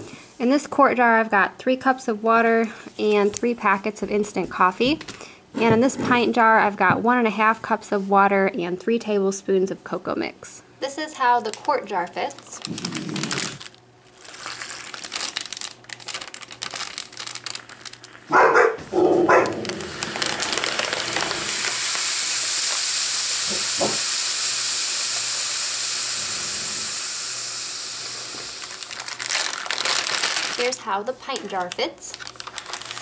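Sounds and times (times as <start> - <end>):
plastic bag crinkling: 11.2 - 22.1, 28.4 - 33.0
steam hissing in a bag: 11.9 - 18.1, 19.4 - 33.0.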